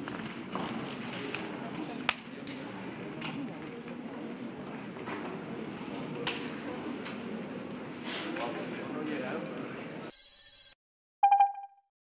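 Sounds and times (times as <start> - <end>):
pulsing electronic tone: 10.1 - 11.6.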